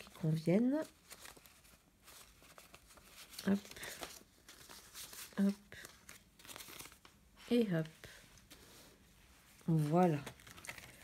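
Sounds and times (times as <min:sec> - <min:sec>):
paper banknotes rustling: 0:00.0 - 0:11.0.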